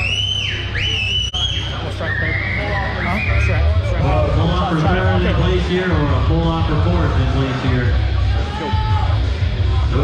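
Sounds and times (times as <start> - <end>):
person whistling loudly: 0.0 - 3.5.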